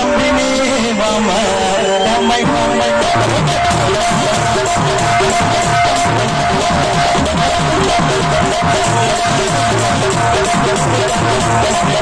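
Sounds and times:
electronic keyboard folk music: 0.0s - 12.0s.

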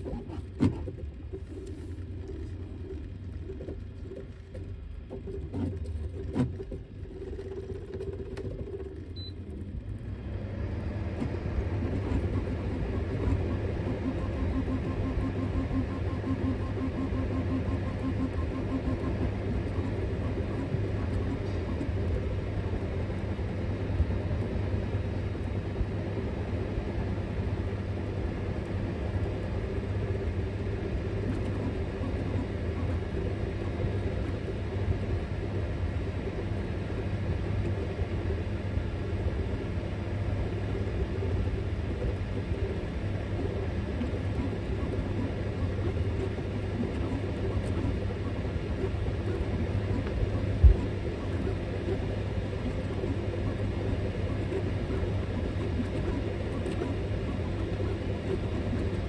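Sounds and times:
cooling fans humming: 0.0s - 59.0s.

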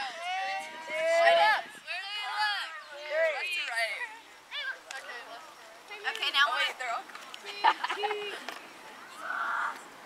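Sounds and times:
people talking: 0.0s - 9.8s.

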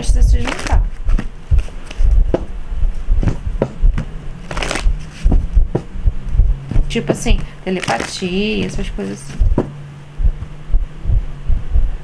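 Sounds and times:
cards being shuffled: 0.0s - 2.5s, 3.2s - 5.9s, 6.7s - 9.7s.

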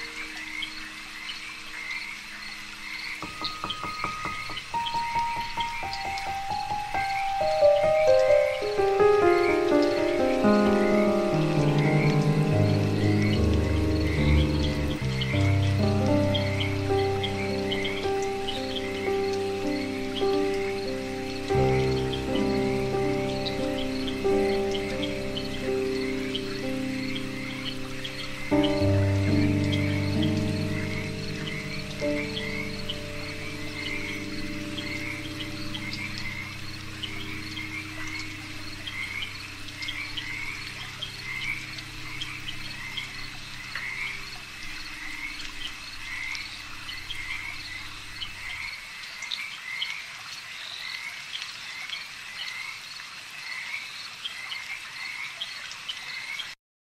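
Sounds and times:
ambient music low chords: 0.0s - 48.6s
frog chorus calling: 0.0s - 56.6s.

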